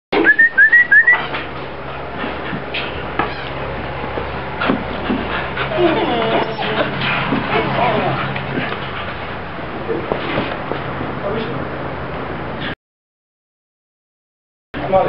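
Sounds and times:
puppy whining: 0.3s - 1.3s, 5.6s - 8.3s.

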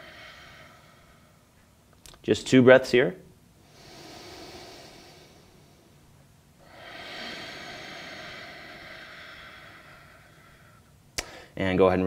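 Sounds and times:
man breathing deeply: 0.0s - 1.7s, 3.6s - 11.6s.

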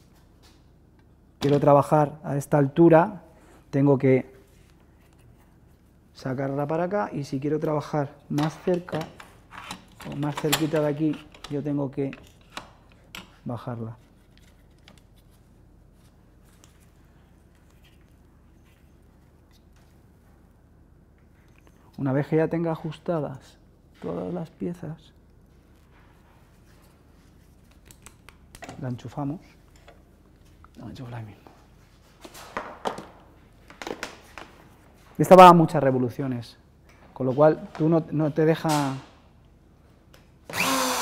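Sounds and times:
low room hum: 0.0s - 41.0s.

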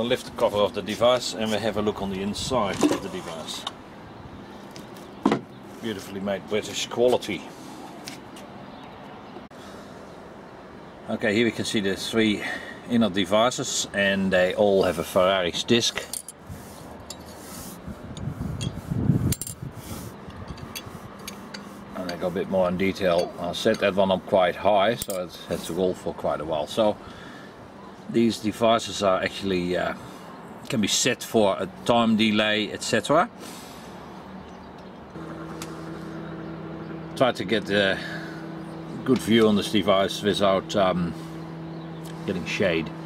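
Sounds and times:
soft rubbing and scraping: 2.5s - 3.6s, 16.5s - 24.0s
steady low hum: 31.4s - 43.0s.

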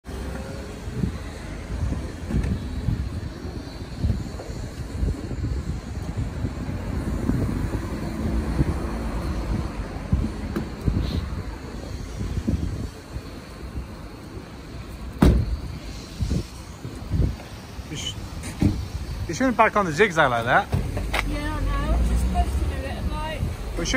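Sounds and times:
car engines passing: 0.0s - 23.9s.

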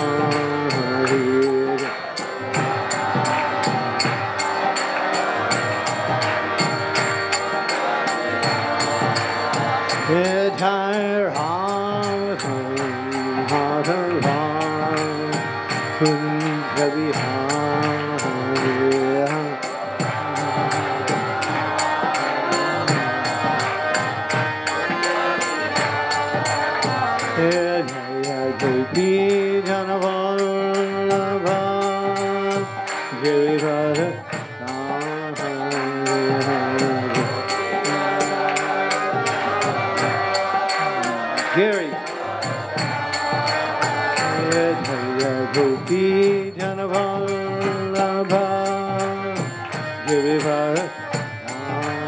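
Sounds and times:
person chanting long notes: 0.0s - 52.0s
small hand cymbals struck: 0.0s - 52.0s
steady percussion beat: 0.0s - 52.0s.

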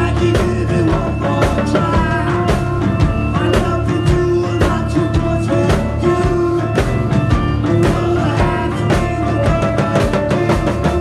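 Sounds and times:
drums and percussion: 0.0s - 11.0s
live band music: 0.0s - 11.0s.

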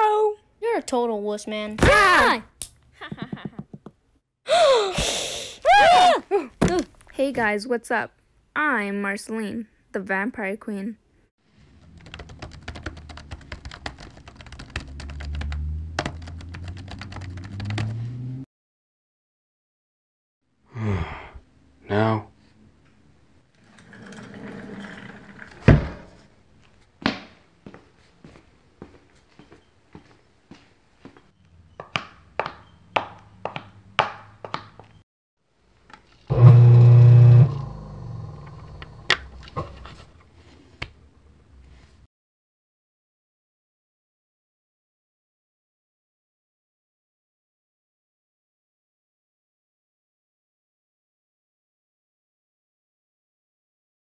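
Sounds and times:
fast keyboard typing: 11.8s - 17.9s
loud low buzz: 36.3s - 39.0s.

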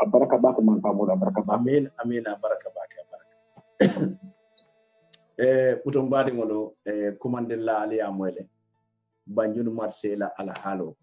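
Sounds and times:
faint steady tones: 0.0s - 8.6s
man clearing throat: 3.8s - 4.3s.

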